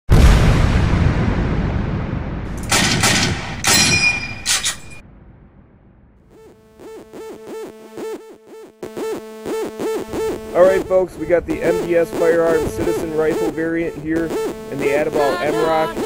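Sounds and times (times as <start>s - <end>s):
boom: 0.1s - 4.2s, 5.0s - 6.4s
gunshot-like cracks with metallic ring: 2.5s - 5.0s
electronic music with pulsing beat: 6.8s - 16.0s.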